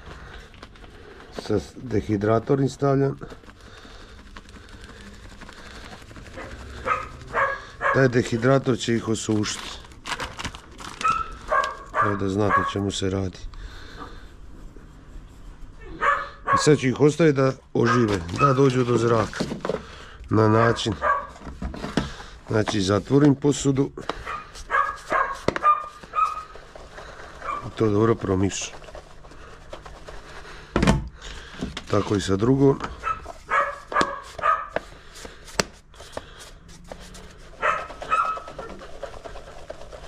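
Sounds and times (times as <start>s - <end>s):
plastic bag rustling: 0.0s - 14.2s, 17.6s - 40.0s.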